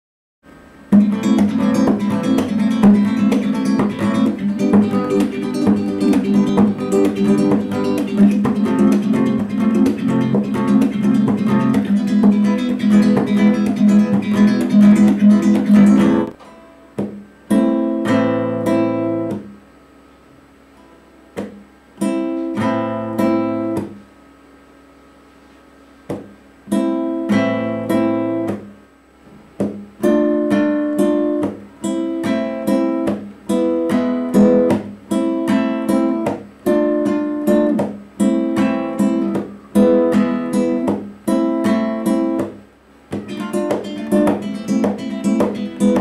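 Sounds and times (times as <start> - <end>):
nylon-string guitar strumming: 0.9 - 19.6, 26.1 - 28.8, 29.6 - 46.0
sharp knocks: 26.1 - 26.3, 29.6 - 29.8, 42.3 - 46.0.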